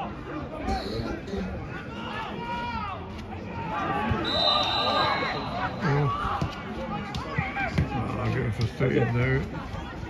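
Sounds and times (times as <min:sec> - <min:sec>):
voices shouting outdoors: 0:00.0 - 0:08.2
whistle blown: 0:04.2 - 0:05.9.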